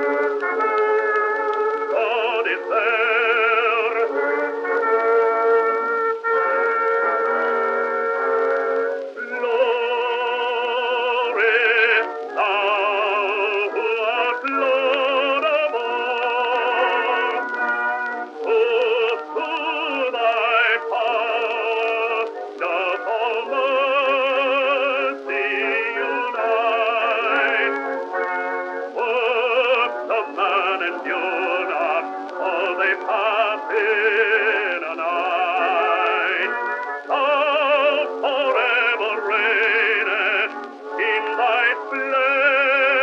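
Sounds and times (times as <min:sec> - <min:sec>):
operatic male voice singing: 0:01.9 - 0:04.7, 0:09.2 - 0:17.7, 0:18.4 - 0:27.9, 0:28.9 - 0:43.0.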